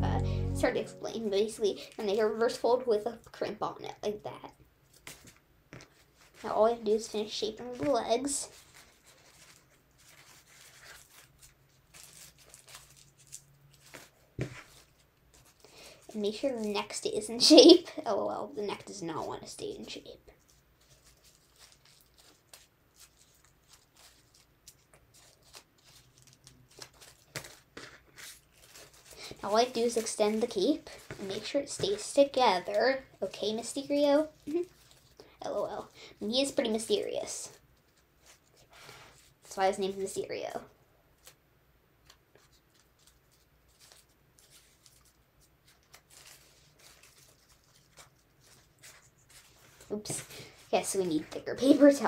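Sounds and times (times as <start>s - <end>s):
person speaking: 0.0s - 4.5s, 6.4s - 8.6s, 29.2s - 34.8s, 49.8s - 52.0s
paper crinkling and rustling: 4.9s - 16.9s, 20.3s - 35.4s, 36.9s - 40.0s, 42.0s - 52.0s.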